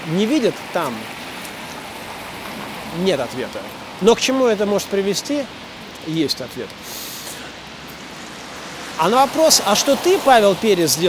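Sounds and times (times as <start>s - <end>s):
wet street ambience hiss: 0.0s - 11.0s.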